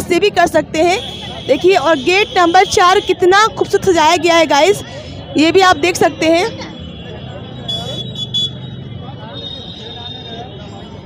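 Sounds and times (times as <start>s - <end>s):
traffic and crowd hum: 0.0s - 11.0s.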